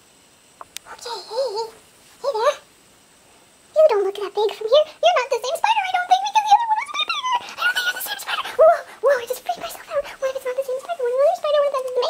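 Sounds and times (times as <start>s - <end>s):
sped-up woman's voice whining: 0.9s - 2.6s, 5.8s - 11.3s.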